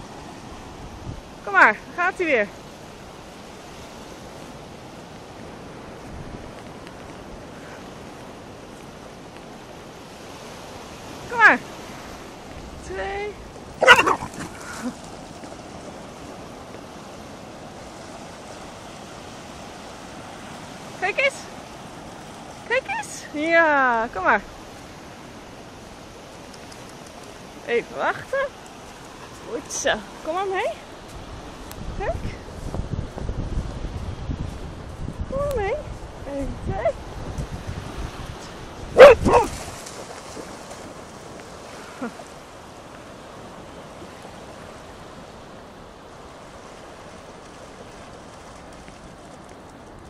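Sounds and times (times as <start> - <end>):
sea surf on beach: 0.0 - 50.0
dog barking: 13.8 - 14.4, 39.0 - 39.5.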